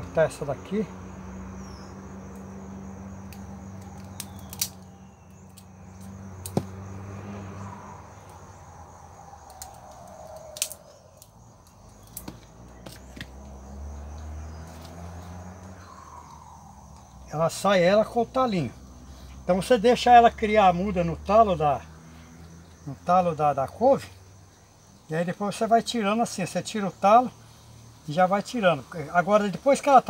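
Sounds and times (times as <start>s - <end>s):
high insect drone: 0.0s - 30.0s.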